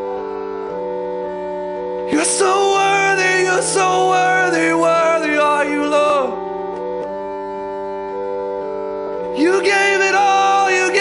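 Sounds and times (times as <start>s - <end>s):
soft keyboard chords: 0.0s - 11.0s.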